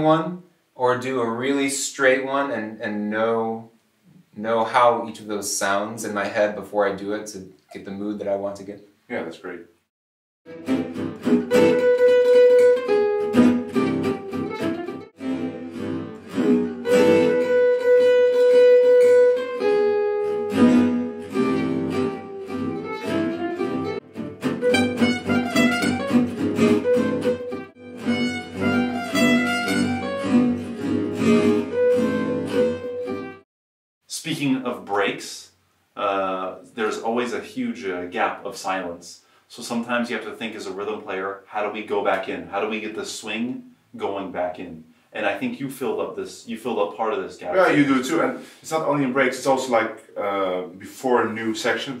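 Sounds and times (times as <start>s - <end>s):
slowed acoustic jazz guitars: 10.5s - 33.4s.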